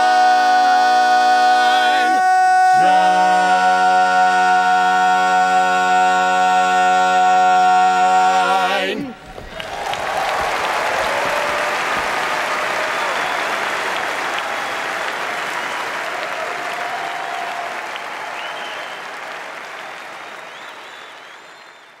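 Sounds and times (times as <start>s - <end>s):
audience applauding and cheering: 9.2s - 22.0s
short whistles: 18.4s - 19.1s, 20.2s - 22.0s.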